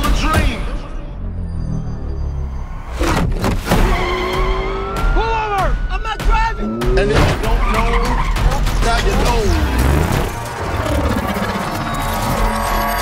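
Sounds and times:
film score music: 0.0 - 13.0
car tyres squealing: 1.3 - 5.3, 6.6 - 13.0
engine revving: 6.6 - 13.0.

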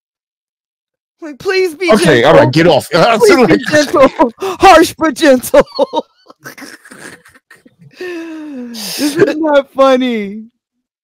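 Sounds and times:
breathless laughter: 5.7 - 9.4.

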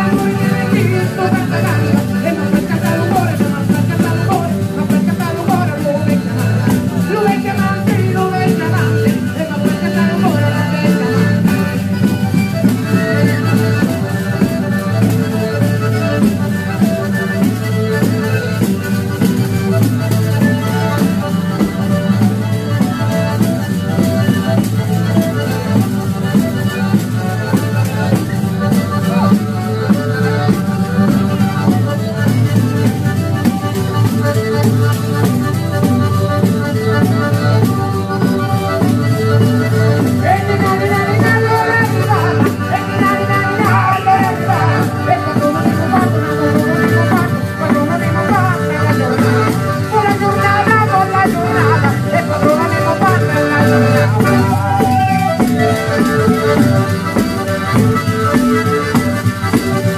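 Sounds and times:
accordion: 0.0 - 59.9
fiddle: 0.0 - 59.9
fast tambourine beat: 40.2 - 59.9.

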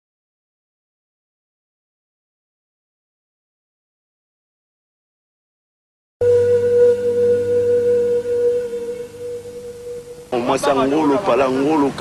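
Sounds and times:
electronic test tone: 6.2 - 11.4
low hum: 6.2 - 12.0.

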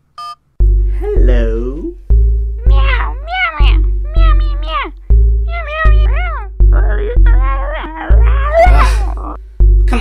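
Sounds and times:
cat meowing: 5.5 - 9.0.

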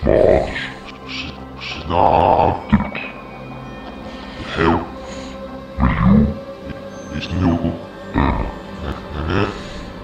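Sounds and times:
low sustained drone: 0.0 - 10.0.

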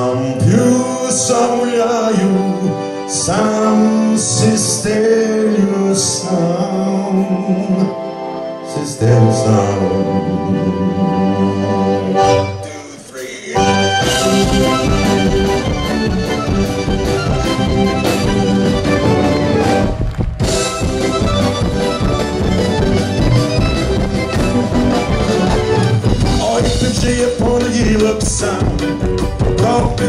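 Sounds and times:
accordion playing lead: 0.0 - 30.0
drum kit: 12.2 - 30.0.

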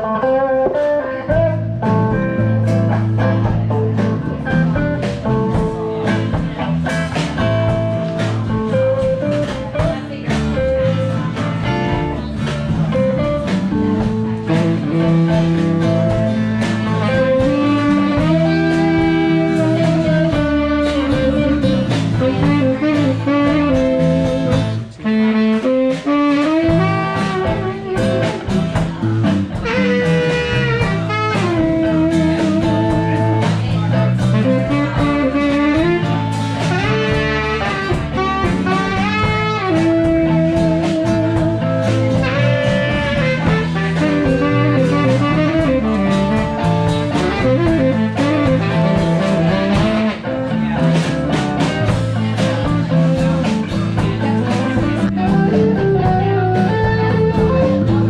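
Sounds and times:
blues band playing: 0.0 - 58.0
saxophone: 0.0 - 58.0.

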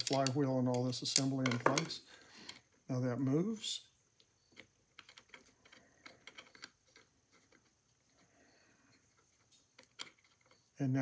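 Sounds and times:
small metal parts clicking: 0.0 - 2.6, 4.2 - 8.2, 9.1 - 10.8.

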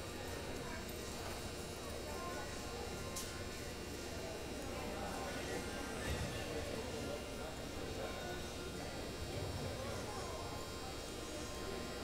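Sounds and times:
murmur of distant voices: 0.0 - 12.0.

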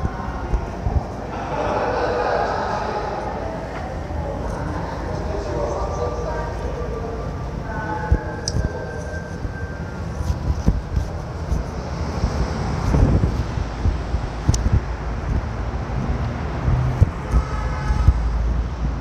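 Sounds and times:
outdoor city noise: 0.0 - 19.0
wind buffeting microphone: 0.0 - 19.0.

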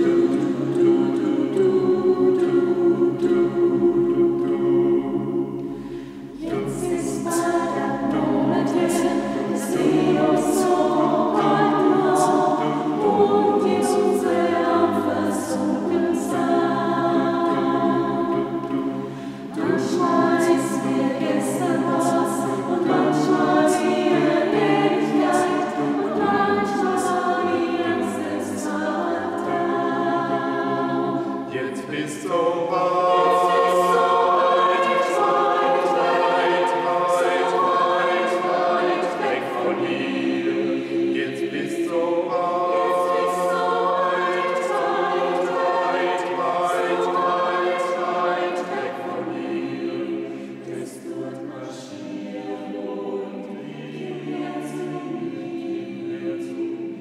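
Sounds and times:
mixed vocal ensemble singing a cappella: 0.0 - 57.0.

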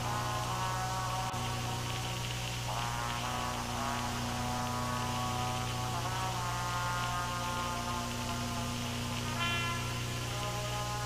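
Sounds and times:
hiss: 0.0 - 11.0
low electrical hum: 0.0 - 11.0.

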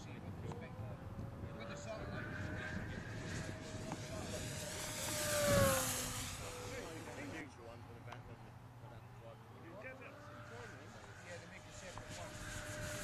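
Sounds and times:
model aeroplane flying past: 0.0 - 13.0.

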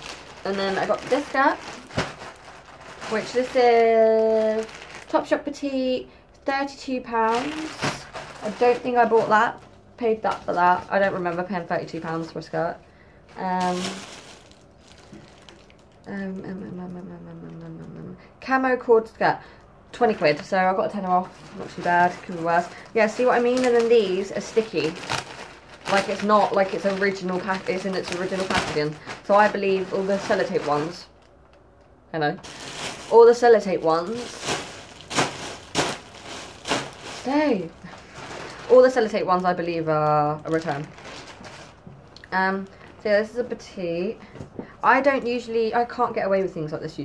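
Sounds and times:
plastic bag crinkling: 0.0 - 17.9, 19.9 - 31.7, 32.3 - 43.0.

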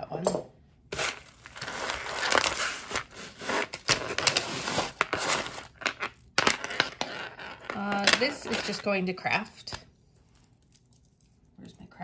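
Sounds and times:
hands rummaging through jewelry: 0.9 - 9.4.

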